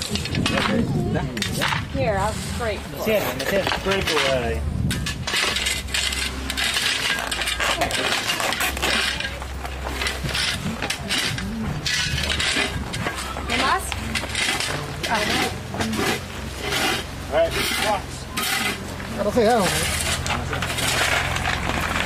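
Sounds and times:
hand tool scraping plastic pipe: 3.0 - 22.0
gravel stones clinking: 3.1 - 22.0.

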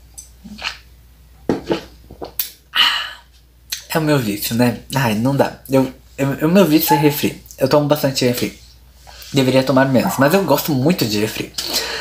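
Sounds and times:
breathy exhale: 11.6 - 12.0.

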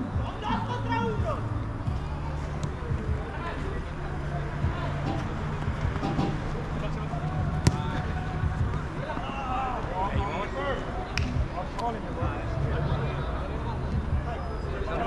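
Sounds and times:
players' voices: 0.0 - 15.0
ball kicked sharply: 7.6 - 8.0.

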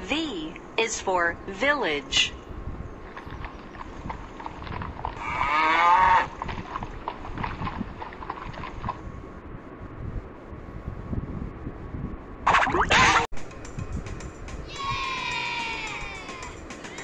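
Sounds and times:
cartoon cow mooing: 5.2 - 6.3.

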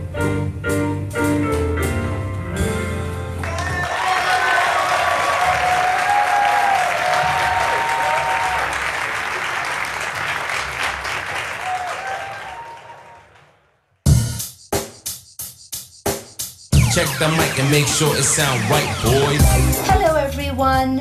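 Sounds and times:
audience applauding: 3.4 - 13.8.

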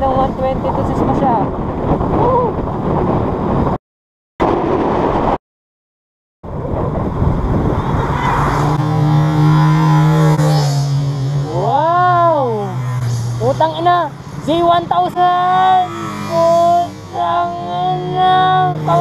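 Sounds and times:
wind rushing over microphone: 0.0 - 3.8, 4.4 - 5.4, 6.4 - 17.2.

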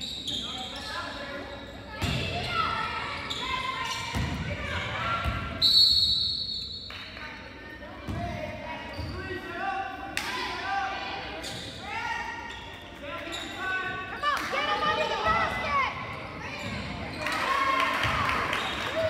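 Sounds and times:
people calling out in gym: 0.0 - 19.0.

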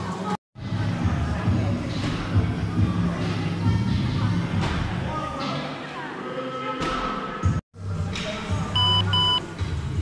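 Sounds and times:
short electronic beeps: 8.8 - 9.4.

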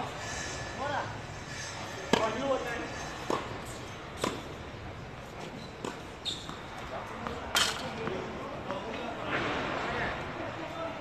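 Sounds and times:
racket hitting tennis ball: 2.1 - 2.4, 3.2 - 4.6
tennis ball bouncing: 3.2 - 4.6, 5.8 - 8.8
players' voices: 5.2 - 11.0.

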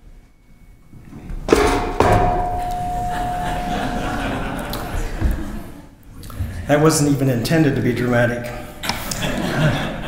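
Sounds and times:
knock on lectern: 1.5 - 2.7
microphone feedback tone: 2.3 - 4.5.

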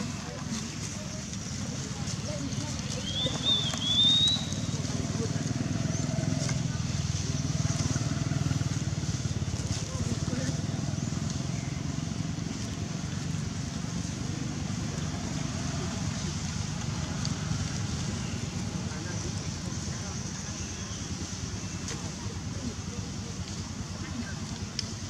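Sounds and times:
murmur of voices: 0.0 - 25.0.

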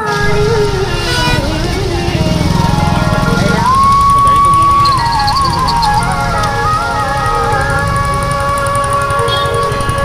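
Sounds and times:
people's voices: 0.0 - 10.0
vehicle engine idling: 0.0 - 10.0.

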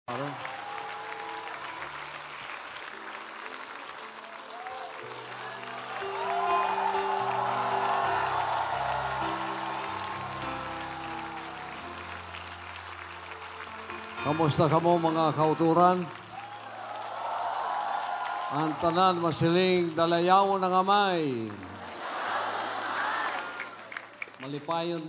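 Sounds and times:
crowd applause: 0.1 - 25.0
backing music of slow held chords: 5.0 - 16.8.

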